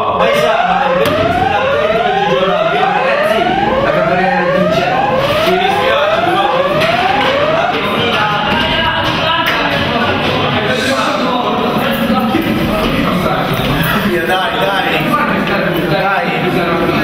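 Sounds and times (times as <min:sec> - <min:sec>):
evacuation alarm whooping: 0:00.1 - 0:08.5.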